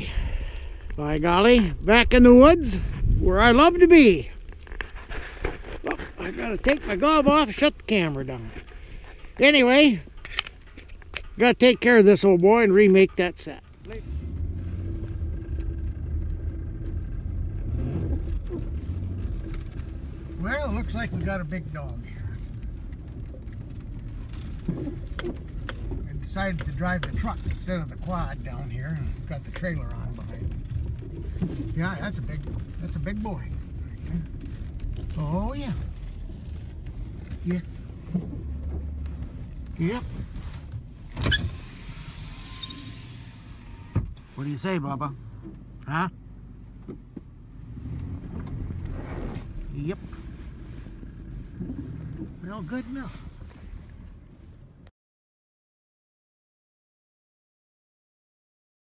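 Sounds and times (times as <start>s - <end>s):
truck engine and road rumble: 0.0s - 54.9s
power window motor whirring: 41.1s - 44.2s.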